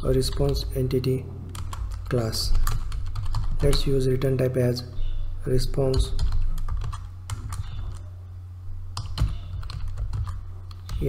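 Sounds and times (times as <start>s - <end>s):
low hum: 0.0s - 11.0s
keyboard typing: 1.5s - 4.0s, 5.8s - 8.1s, 8.9s - 11.0s.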